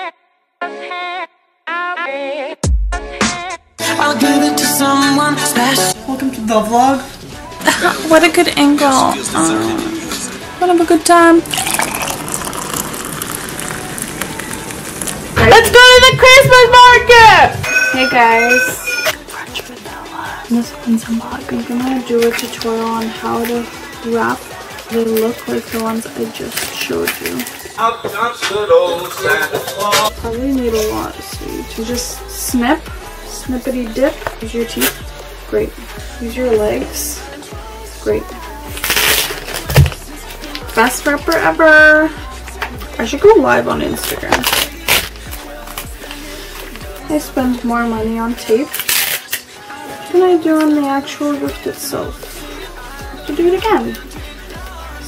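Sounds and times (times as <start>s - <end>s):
hot water pouring into a mug: 11.4s - 15.4s
wrapping paper crinkling: 11.6s - 15.4s, 38.7s - 40.7s, 44.0s - 47.0s, 48.6s - 49.4s.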